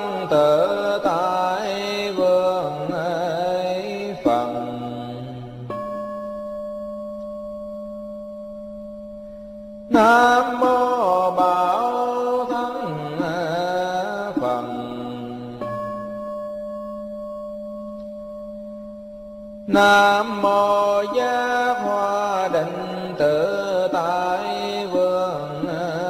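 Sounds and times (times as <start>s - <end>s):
monk chanting: 0.0s - 5.7s, 9.9s - 15.7s, 19.7s - 26.0s
bell ringing: 4.2s - 22.0s.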